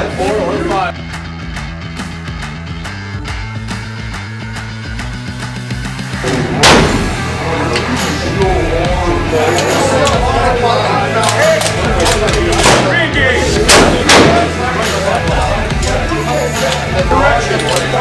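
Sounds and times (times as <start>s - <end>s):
background music: 0.0s - 18.0s
rifle shots: 6.6s - 7.2s, 13.7s - 14.5s.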